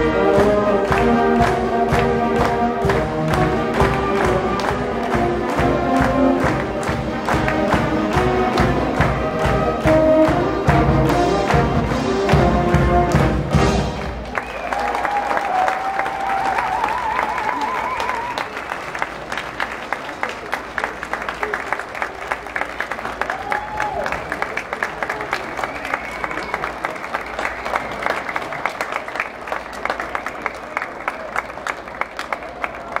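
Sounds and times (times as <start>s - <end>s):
audience applause: 0.0s - 33.0s
wavering cheers: 14.3s - 18.8s, 23.2s - 28.6s.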